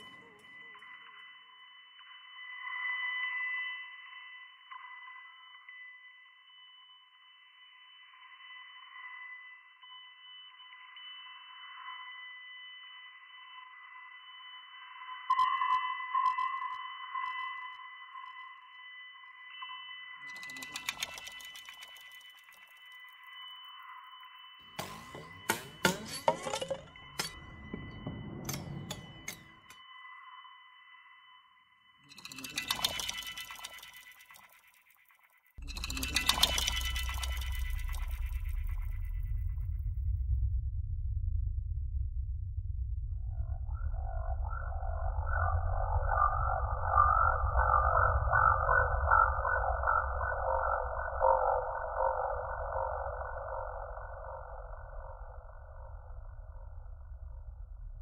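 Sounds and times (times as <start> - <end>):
high sonar-like tone: 0.0 - 58.0
electronic clicks: 15.3 - 17.5, 20.2 - 23.3, 32.1 - 39.6
high electronic tones: 24.4 - 29.8, 32.1 - 34.7, 35.6 - 39.6.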